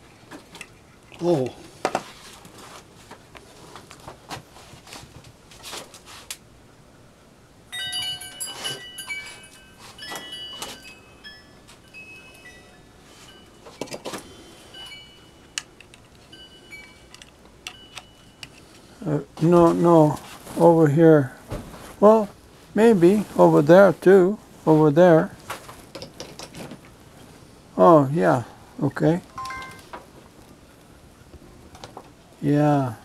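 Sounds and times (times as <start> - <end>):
metal objects clinking: 7.8 - 12.7
short ringing notes: 29.3 - 29.9.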